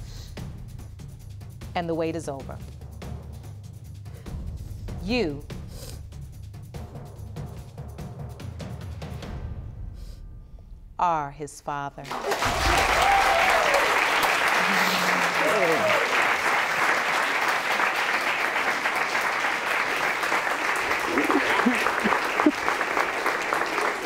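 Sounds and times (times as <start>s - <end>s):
audience applauding: 12.1s - 24.0s
person laughing: 14.6s - 16.0s, 21.0s - 22.9s.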